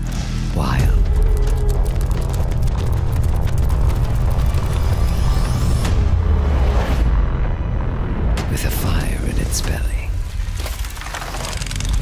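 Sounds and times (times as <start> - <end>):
mechanical clicks patter: 0.0 - 5.7, 10.5 - 12.0
deep steady rumble: 0.8 - 10.4.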